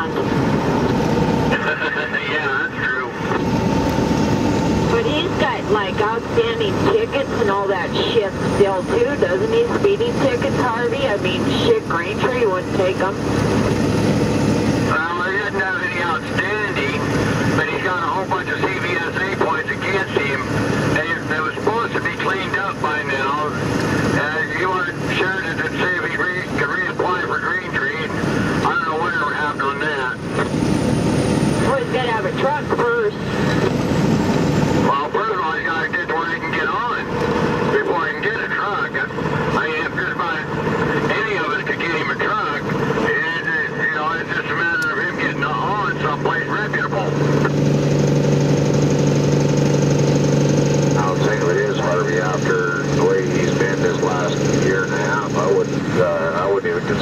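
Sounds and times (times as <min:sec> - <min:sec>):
indistinct voices talking: 0:00.0 - 0:33.8, 0:34.8 - 0:47.7, 0:50.3 - 0:57.0
low engine hum: 0:00.0 - 0:57.0
vehicle engine and road noise: 0:00.0 - 0:57.0.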